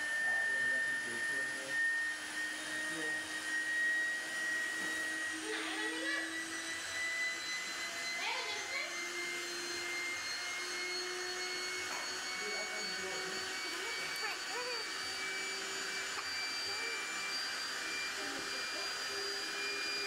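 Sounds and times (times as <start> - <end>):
electric air pump whining: 0.0 - 20.0.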